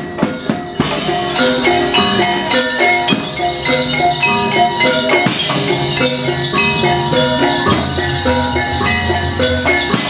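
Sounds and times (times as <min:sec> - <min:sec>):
drumming: 0:00.0 - 0:10.0
metallophones playing melody: 0:00.0 - 0:10.0.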